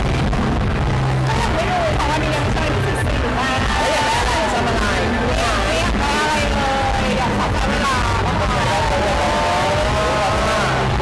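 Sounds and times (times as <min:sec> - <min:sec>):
background music: 0:00.0 - 0:11.0
low hum: 0:00.0 - 0:11.0
voices: 0:01.1 - 0:11.0.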